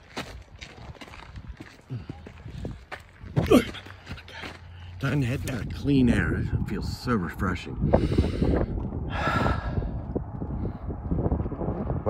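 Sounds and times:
low rumble on microphone: 5.4s - 12.0s
man sighing: 9.1s - 10.0s.

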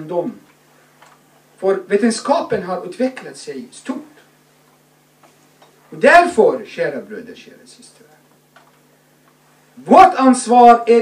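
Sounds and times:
steady low hum: 0.0s - 11.0s
man speaking: 1.6s - 4.2s, 5.9s - 8.2s, 9.8s - 11.0s.

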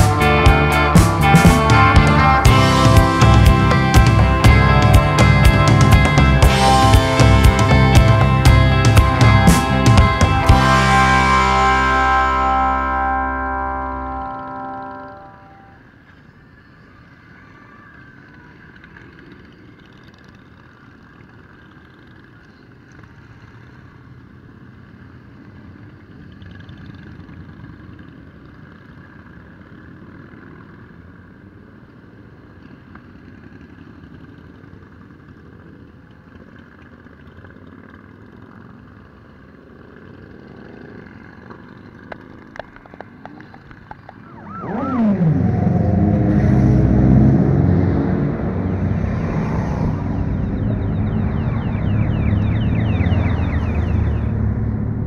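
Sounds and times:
loud engine rising in pitch: 0.0s - 16.0s, 43.8s - 55.0s
motorcycles riding past: 0.0s - 55.0s.

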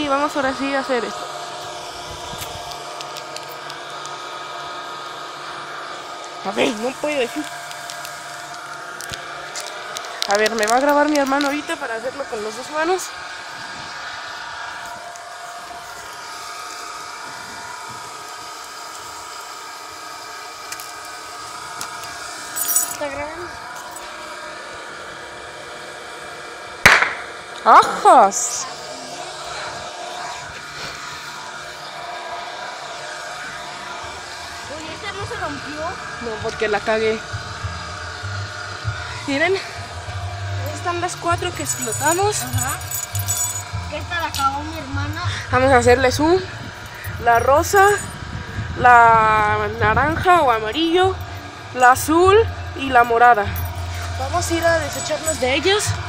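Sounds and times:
steady mechanical hum: 0.0s - 56.0s.

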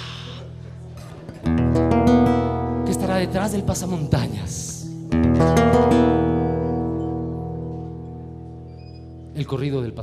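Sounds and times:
acoustic guitar chord ringing: 1.3s - 3.0s, 4.3s - 9.3s.

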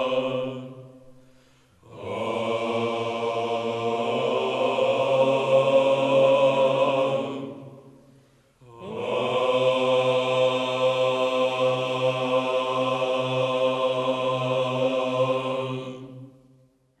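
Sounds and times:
male choir holding a chord: 0.0s - 1.0s, 1.8s - 7.8s, 8.6s - 16.3s
low held vocal drone: 0.0s - 1.2s, 1.8s - 8.0s, 8.6s - 16.3s.

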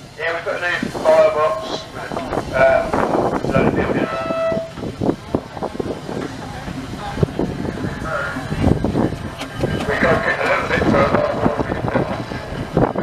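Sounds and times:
steam roller whistle toots: 3.9s - 4.8s.

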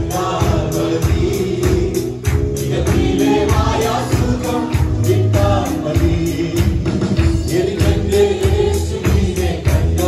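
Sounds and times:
drum kit: 0.0s - 10.0s
keyboard: 0.0s - 10.0s
men singing into microphones: 0.0s - 10.0s.

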